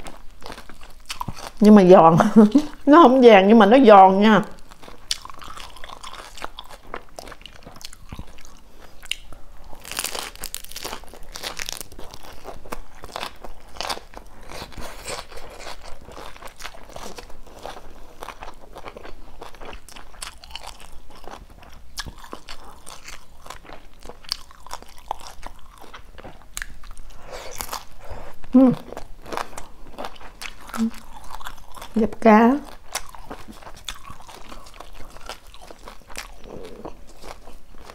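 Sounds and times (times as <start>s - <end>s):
chewing crispy fried food: 0.0s - 2.9s, 4.4s - 37.9s.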